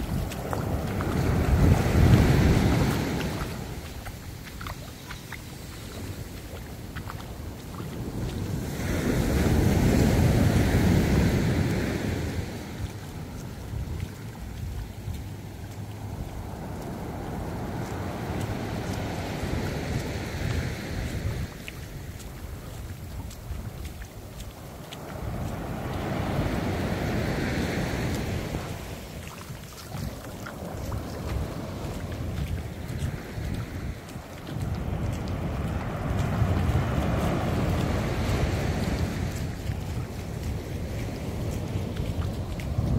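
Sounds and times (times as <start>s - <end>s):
surf breaking on a beach: 0.0s - 14.8s, 16.0s - 42.9s
wind buffeting microphone: 0.0s - 42.9s.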